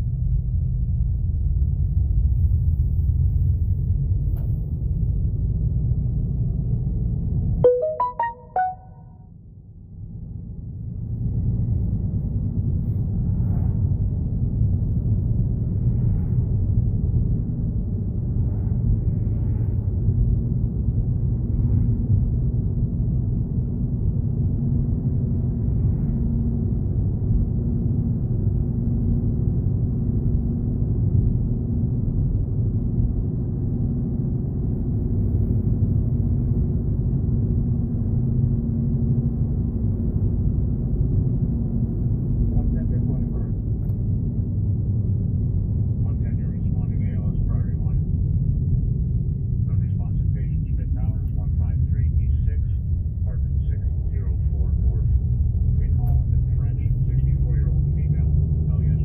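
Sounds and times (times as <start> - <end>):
constant low hum: 0.0 - 59.0.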